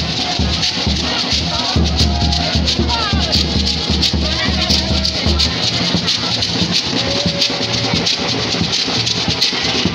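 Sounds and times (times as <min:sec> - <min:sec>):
beaded gourd shakers rattling: 0:00.0 - 0:09.9
snare drumming: 0:00.0 - 0:09.9.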